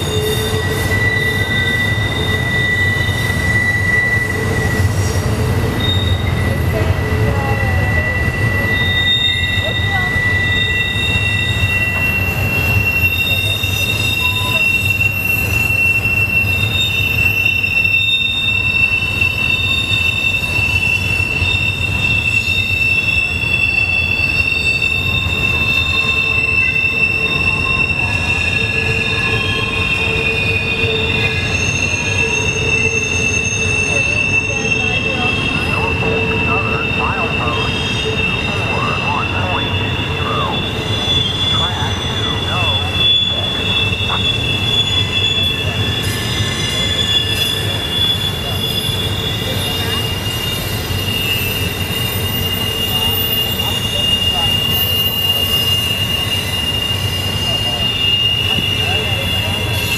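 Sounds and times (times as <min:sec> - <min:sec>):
low rumble of train: 0:00.0 - 0:59.9
train wheels squealing on rail: 0:00.0 - 0:59.9.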